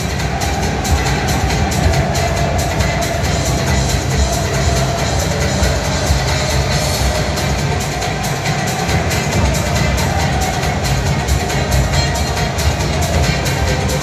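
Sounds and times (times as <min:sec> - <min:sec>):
crowd chanting in unison: 0:00.0 - 0:14.0
steady drumbeat: 0:00.0 - 0:14.0.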